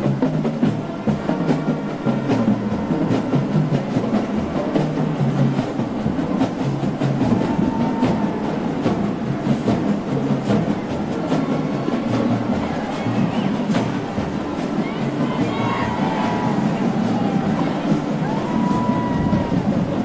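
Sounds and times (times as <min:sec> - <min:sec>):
drum beats: 0:00.0 - 0:20.0
marching band playing: 0:00.0 - 0:20.0.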